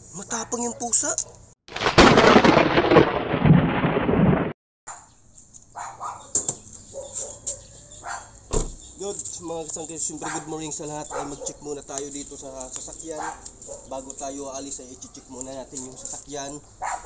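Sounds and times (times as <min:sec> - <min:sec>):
thunderclap crash: 0:01.7 - 0:04.6
sharp thump: 0:08.5 - 0:08.8.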